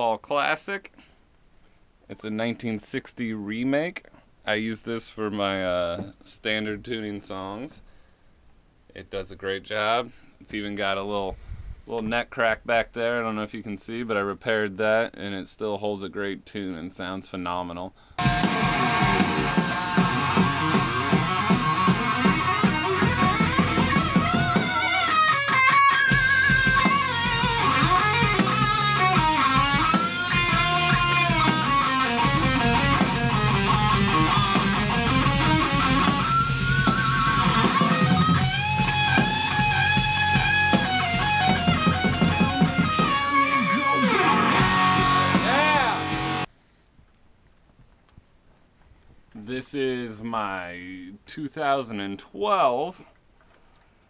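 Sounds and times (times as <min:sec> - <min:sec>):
distorted electric guitar solo: 0:18.2 - 0:46.5
rock band backing: 0:18.2 - 0:46.5.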